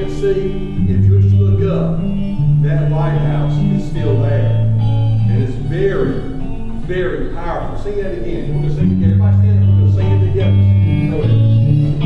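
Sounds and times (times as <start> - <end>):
bass guitar notes: 0.0 - 12.0
guitar playing: 0.0 - 12.0.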